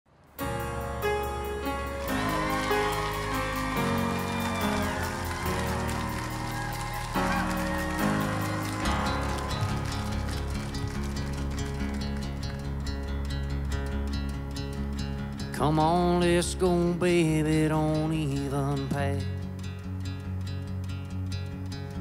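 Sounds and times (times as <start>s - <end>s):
acoustic guitar chords: 0.4s - 22.0s.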